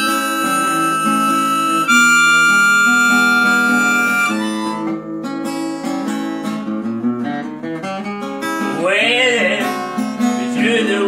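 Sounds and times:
acoustic guitar strumming: 0:00.0 - 0:11.0
man singing: 0:08.7 - 0:11.0.

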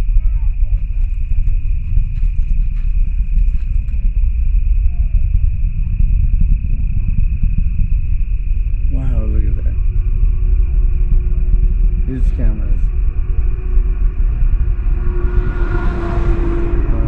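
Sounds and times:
cricket chirring: 0:00.0 - 0:17.0
low rumble: 0:00.0 - 0:17.0.

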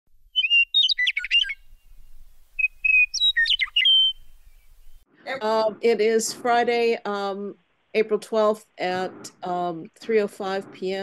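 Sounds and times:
bird chirping: 0:00.2 - 0:05.1.

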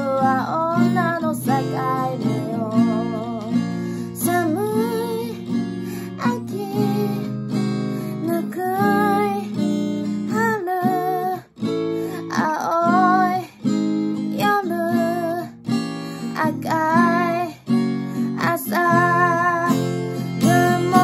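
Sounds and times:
person singing: 0:00.0 - 0:07.4, 0:08.0 - 0:09.6, 0:10.3 - 0:11.5, 0:12.1 - 0:13.6, 0:14.3 - 0:15.6, 0:16.2 - 0:17.6, 0:18.2 - 0:21.0
acoustic guitar strumming chords: 0:00.0 - 0:21.0.

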